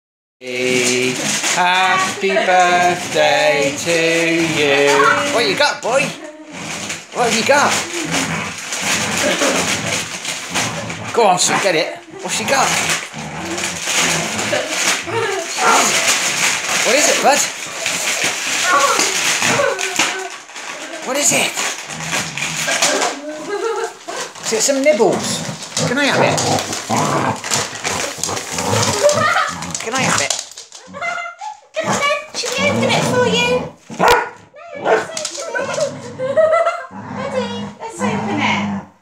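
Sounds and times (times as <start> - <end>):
wrapping paper crinkling and tearing: 0.4 - 36.4
dog yipping: 34.0 - 35.1.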